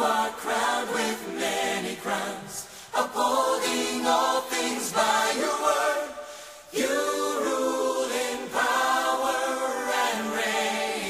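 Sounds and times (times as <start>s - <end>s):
choir singing held chords: 0.0s - 11.0s.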